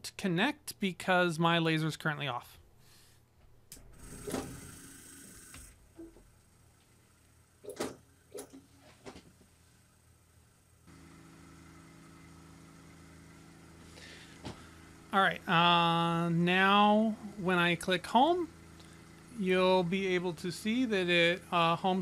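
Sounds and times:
laser cutter humming: 10.2 - 22.0.

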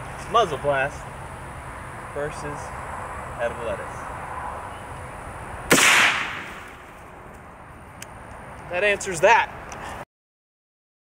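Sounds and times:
rifle shot echo: 5.7 - 7.0.

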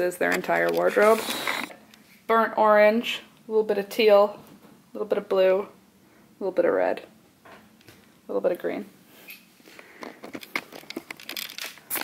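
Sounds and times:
crinkling rustling crackles: 9.7 - 12.0.

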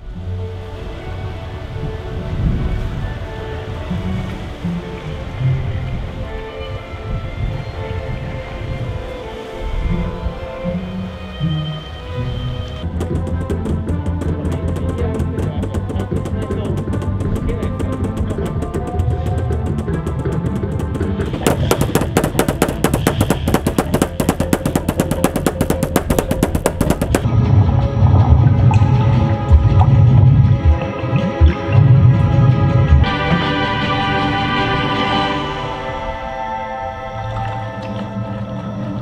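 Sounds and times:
music: 0.0 - 39.0
sharp percussive clicks: 12.8 - 27.3.

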